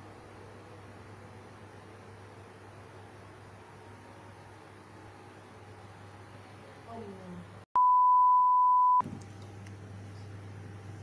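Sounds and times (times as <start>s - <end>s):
censor bleep tone: 7.8s - 9.0s.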